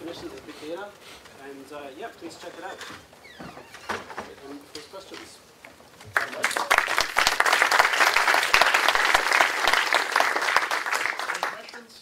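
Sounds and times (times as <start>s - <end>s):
audience applauding: 6.0s - 12.0s.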